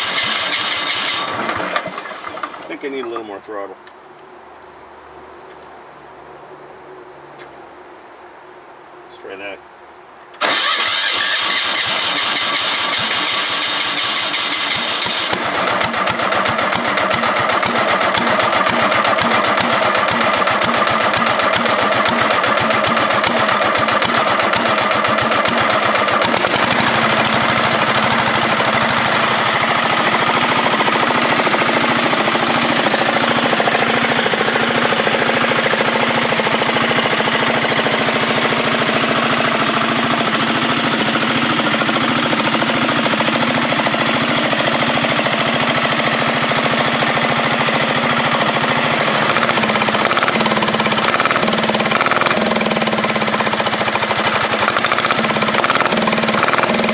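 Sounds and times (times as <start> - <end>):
electric starter cranking: 0.0 - 3.2, 10.4 - 56.9
diesel engine knocking: 12.5 - 56.9.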